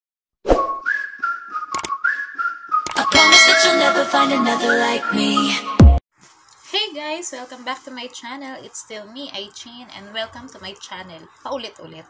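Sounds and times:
whistled tune: 0.5 - 6.0.

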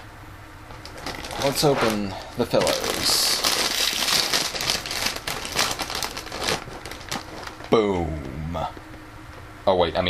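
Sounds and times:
foil bag crinkling: 0.7 - 7.8.

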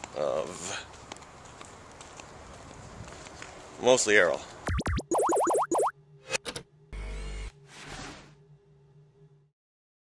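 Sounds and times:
cartoon springy boings: 4.7 - 5.9.

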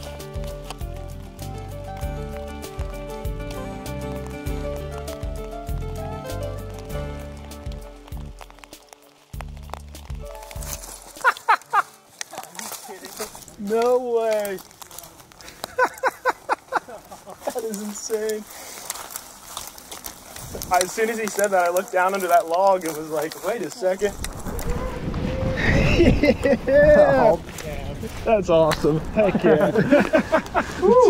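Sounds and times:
background music: 0.0 - 12.5.

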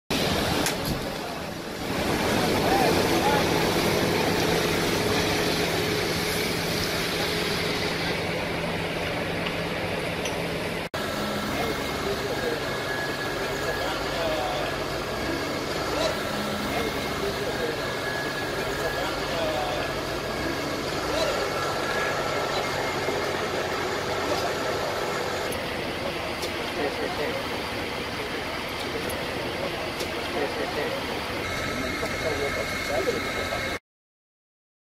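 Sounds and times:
fire hose spraying water: 0.1 - 9.0
fire engine droning: 0.1 - 33.8
men talking: 1.1 - 5.3, 11.2 - 33.8.

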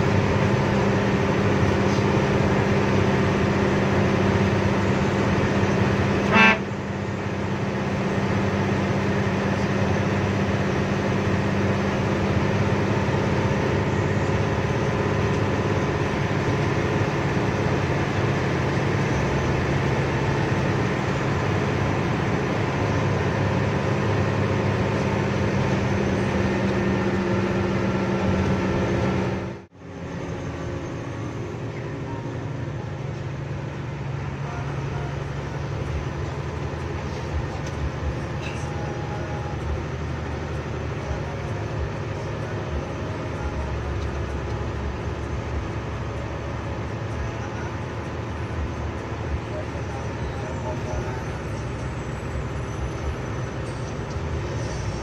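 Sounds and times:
bus engine drone: 0.0 - 55.0
bus horn toot: 5.7 - 7.1.

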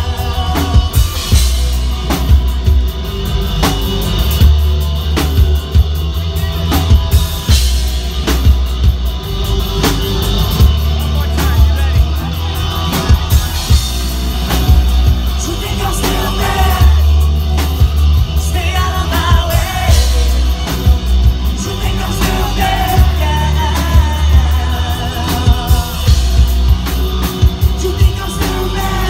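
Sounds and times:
bass guitar: 0.0 - 29.0
electric guitar: 0.0 - 29.0.

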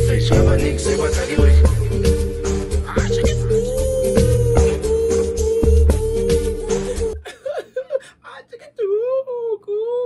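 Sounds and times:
man singing unaccompanied: 0.0 - 7.2.

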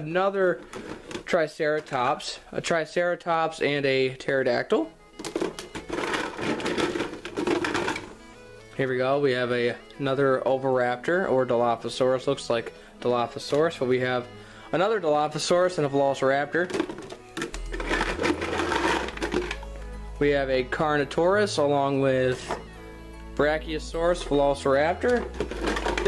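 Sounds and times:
plastic toys rattling in bucket: 5.3 - 8.1, 16.6 - 19.6, 25.0 - 26.0.

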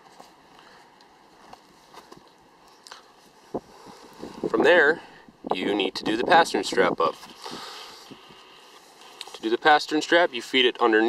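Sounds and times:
strap rustling: 0.0 - 4.6.

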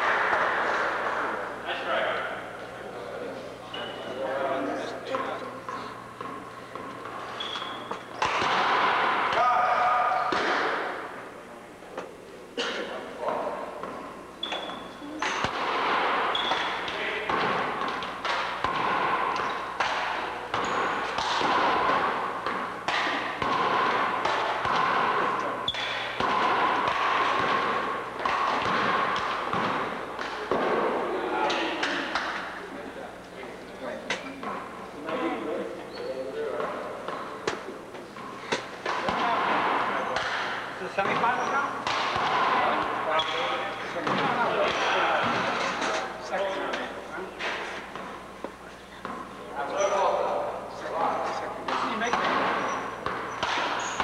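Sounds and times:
high squeaks: 7.3 - 8.2, 14.4 - 15.2.

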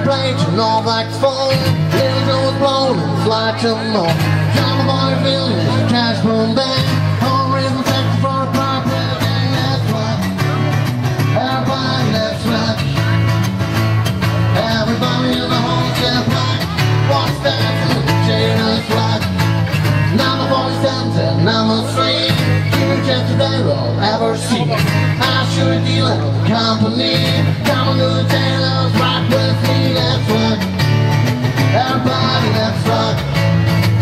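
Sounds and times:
acoustic rock and roll band playing: 0.0 - 34.0
strummed acoustic guitars: 0.0 - 34.0
upright double bass: 0.0 - 34.0.

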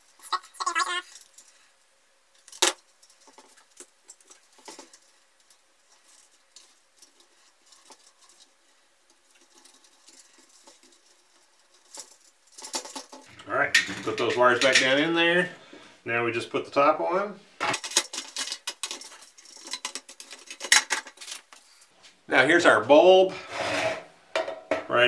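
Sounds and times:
wires being twisted by hand: 2.3 - 13.4, 17.7 - 22.0.

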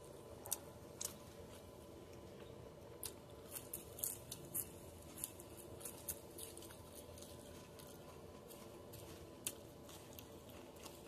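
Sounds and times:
chewing leafy greens: 0.0 - 11.0.

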